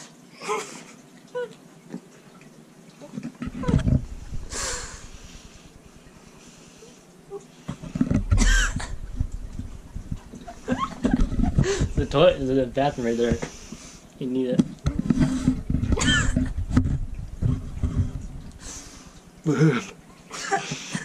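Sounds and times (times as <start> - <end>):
man gagging groan: 19.4 - 20.0.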